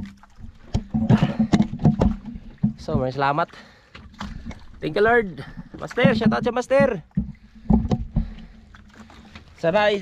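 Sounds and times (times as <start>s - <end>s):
knocks and clatter of net handling: 0.0s - 3.4s, 4.0s - 9.6s.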